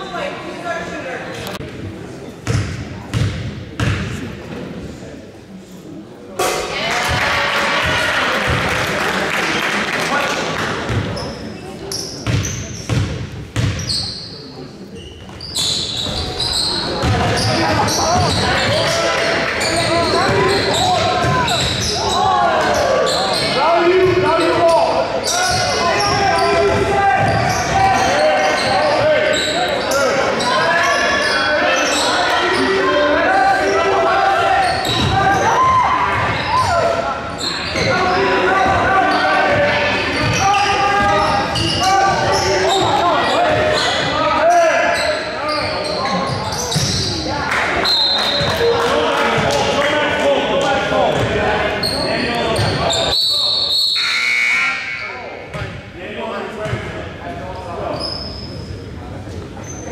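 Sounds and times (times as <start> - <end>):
sneakers squeaking: 2.4 - 4.6, 10.8 - 48.8, 51.1 - 55.9, 56.6 - 57.0, 57.6 - 59.9
crowd cheering: 6.6 - 10.8
people shouting: 32.1 - 37.0.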